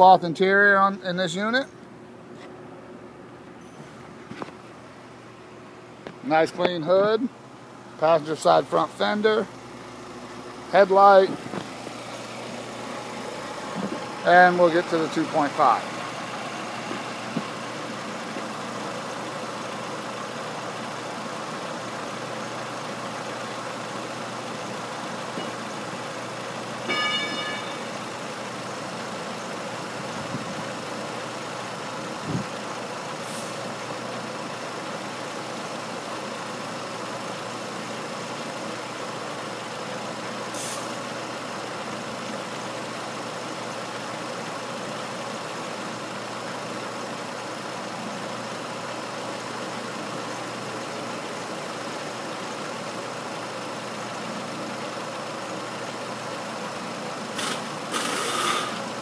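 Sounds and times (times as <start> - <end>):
car engine idling: 0.0 - 59.0
brief hisses: 40.6 - 40.9, 57.4 - 58.8.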